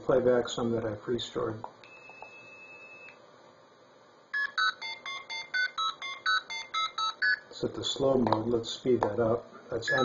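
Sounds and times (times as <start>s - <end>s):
steady telephone tone: 1.9s - 3.2s.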